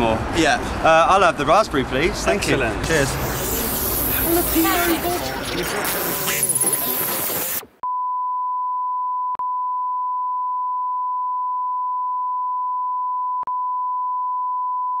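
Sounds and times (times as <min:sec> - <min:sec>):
party chatter: 0:02.3 - 0:07.7.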